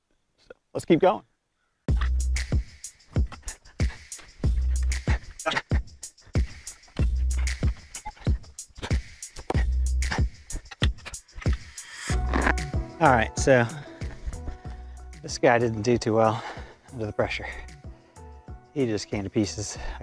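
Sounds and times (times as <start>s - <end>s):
crisp percussion hits: 5.1s - 13.1s
deep bass notes: 11.6s - 15.3s.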